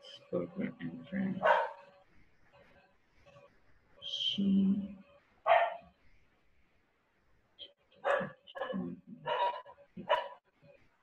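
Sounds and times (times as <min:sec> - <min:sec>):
dog barking over call line: 0:01.4 - 0:01.8, 0:05.5 - 0:05.9, 0:08.0 - 0:10.4.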